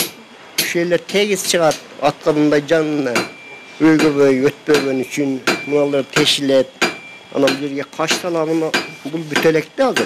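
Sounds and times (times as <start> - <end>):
man talking into a microphone: 3.8 - 6.7.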